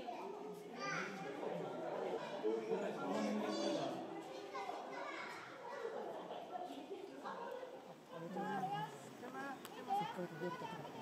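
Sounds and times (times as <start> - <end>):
children's voices: 0.0 - 1.4, 2.6 - 9.0
chatter of onlookers: 0.0 - 11.0.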